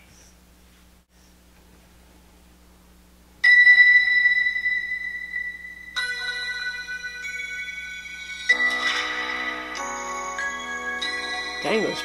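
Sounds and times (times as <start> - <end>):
ringing struck notes through speakers: 8.2 - 12.0.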